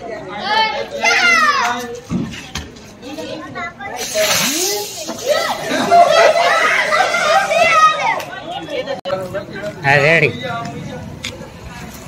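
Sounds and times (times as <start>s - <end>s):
firework hissing: 3.9s - 7.9s.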